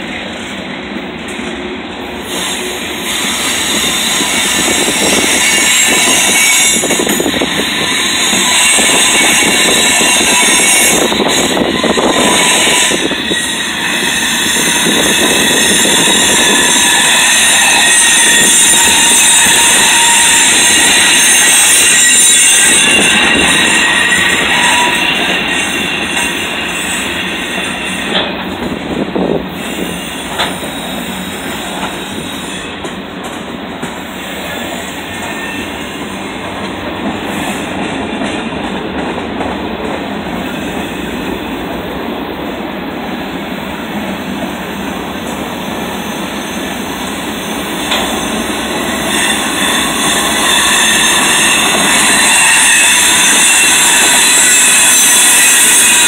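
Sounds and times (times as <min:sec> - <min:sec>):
freight train wheels rumbling: 0:00.0 - 0:56.0
wheel squeal: 0:02.3 - 0:28.3, 0:45.9 - 0:56.0.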